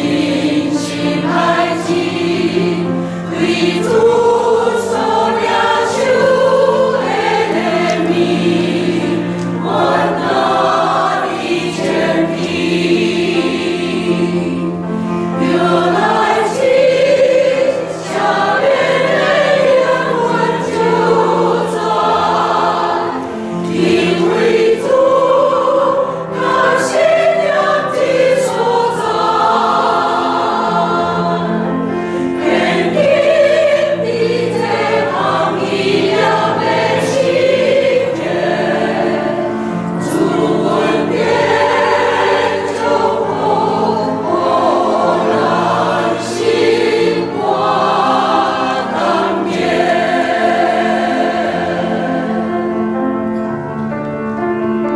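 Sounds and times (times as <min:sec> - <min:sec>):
church choir singing: 0:00.0 - 0:54.9.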